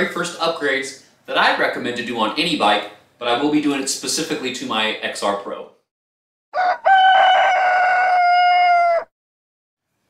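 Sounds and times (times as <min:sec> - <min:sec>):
rooster crowing: 0:06.5 - 0:09.1.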